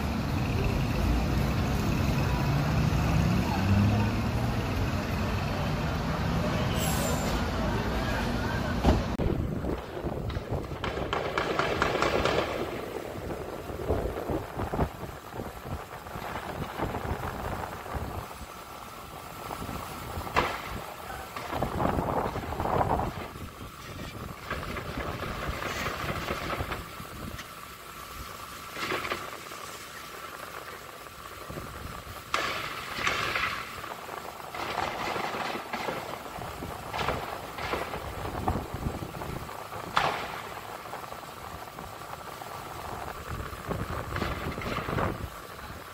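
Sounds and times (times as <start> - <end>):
traffic hum: 0.0 - 45.9
distant gunshots echoing: 10.6 - 12.9.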